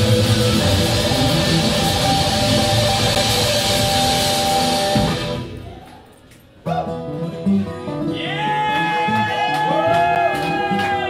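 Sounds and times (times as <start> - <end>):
band playing funk-rock: 0.0 - 5.6
electric guitar: 0.0 - 5.6.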